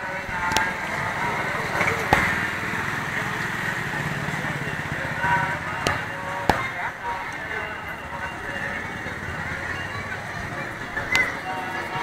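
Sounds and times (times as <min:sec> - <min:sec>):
small engine running: 0:00.7 - 0:12.0.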